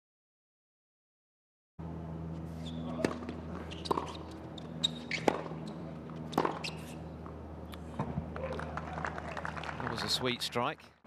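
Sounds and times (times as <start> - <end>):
steady low hum: 1.8 - 11.0
tennis ball hits: 2.8 - 4.4, 5.0 - 6.9.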